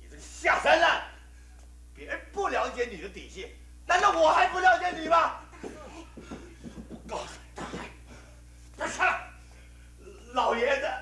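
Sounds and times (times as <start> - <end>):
man shouting a cry: 7.0 - 8.0, 8.8 - 9.4.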